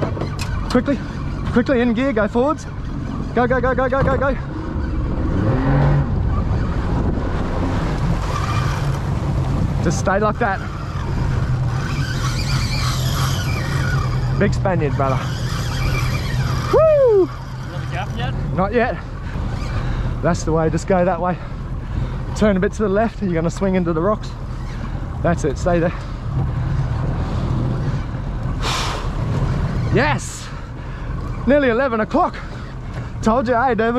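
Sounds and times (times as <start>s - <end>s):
outboard motor running: 0.0s - 33.9s
fishing reel drag squealing: 0.2s - 3.6s, 8.2s - 9.2s, 9.9s - 18.4s, 19.2s - 20.1s, 24.2s - 25.1s, 27.3s - 33.5s.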